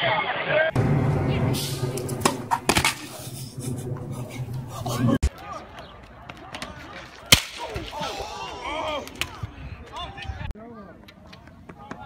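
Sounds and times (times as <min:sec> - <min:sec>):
steady low hum: 0:00.7 - 0:05.2.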